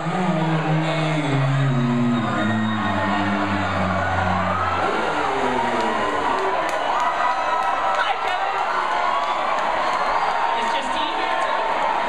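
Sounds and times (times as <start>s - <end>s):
crowd cheering and shouting: 0.0s - 12.0s.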